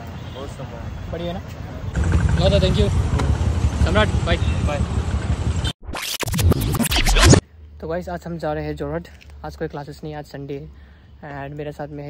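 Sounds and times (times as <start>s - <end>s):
street traffic rumble: 0.0s - 5.8s
record-scratch swipes: 5.8s - 7.4s.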